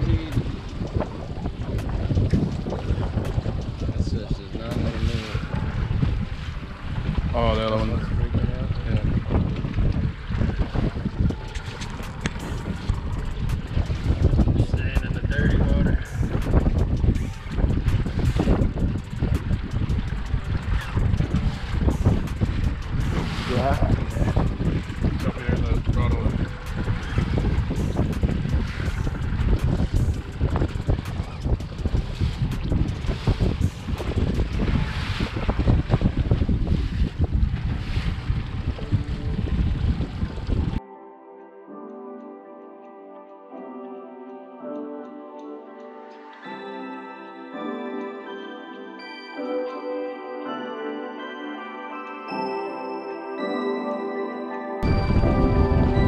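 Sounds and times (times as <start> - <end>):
choppy water washing: 0.0 - 40.8, 54.8 - 56.0
wind buffeting microphone: 0.0 - 40.8, 54.8 - 56.0.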